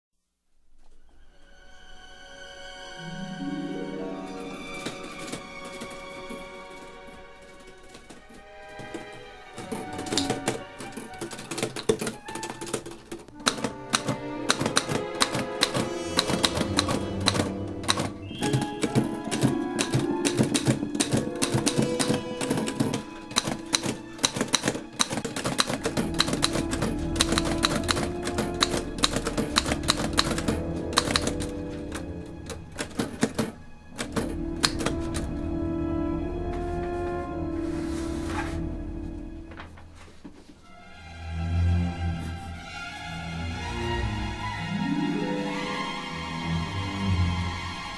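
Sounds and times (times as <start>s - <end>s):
background music with sustained tones: 0.5s - 47.9s
manual typewriter typing: 4.7s - 35.4s.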